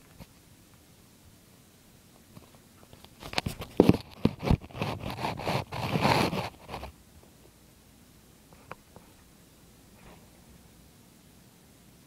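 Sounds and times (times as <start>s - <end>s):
rough scraping on microphone: 3.2s - 6.9s.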